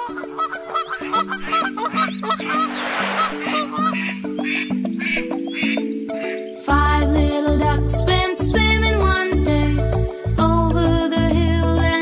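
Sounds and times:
instrumental children's song: 0:00.0 - 0:12.0
brief rushing noise: 0:02.5 - 0:03.8.

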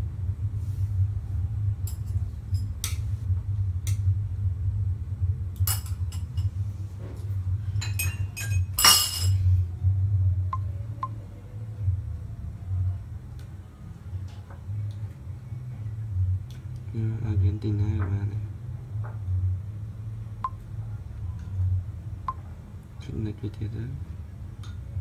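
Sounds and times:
low rumble: 0:00.0 - 0:25.0.

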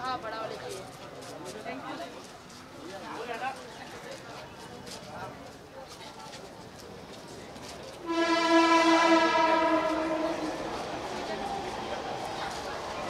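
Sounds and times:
vehicle horn: 0:08.0 - 0:11.2.

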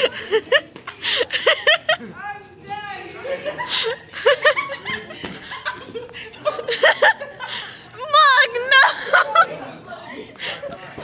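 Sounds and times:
kids laughing: 0:00.0 - 0:11.0.

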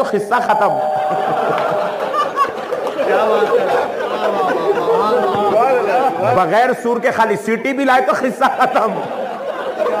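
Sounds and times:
man's amplified voice: 0:00.0 - 0:01.8, 0:05.6 - 0:09.1
listeners talking and laughing: 0:00.4 - 0:06.8, 0:07.6 - 0:10.0.

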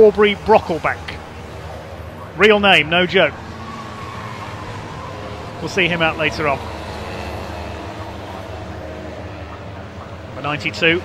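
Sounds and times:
race car engines running: 0:00.0 - 0:11.0.

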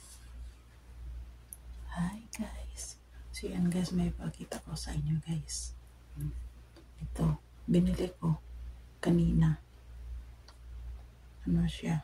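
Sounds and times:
steady low hum: 0:00.0 - 0:12.0
woman speaking softly: 0:01.8 - 0:06.4, 0:07.0 - 0:08.4, 0:09.0 - 0:09.6, 0:11.4 - 0:12.0.

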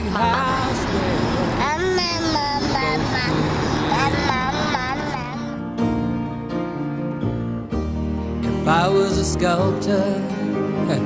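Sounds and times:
car road noise: 0:00.0 - 0:05.8
toddler babbling and squealing: 0:01.6 - 0:05.6.

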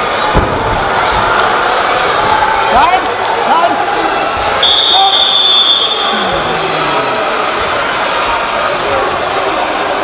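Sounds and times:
shouts from coaches and spectators: 0:00.7 - 0:10.0
high steady whistle blast: 0:04.6 - 0:06.2.

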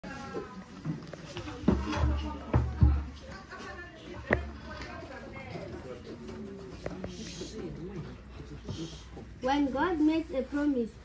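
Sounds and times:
young children's voices: 0:09.4 - 0:11.0.

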